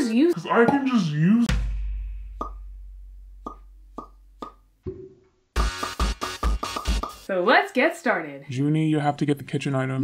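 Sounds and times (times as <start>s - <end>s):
deep bass boom: 1.5s - 4.4s.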